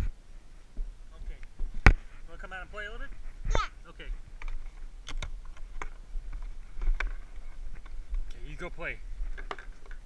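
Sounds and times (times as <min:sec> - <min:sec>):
camera handling clicks and knocks: 0:04.4 - 0:07.2.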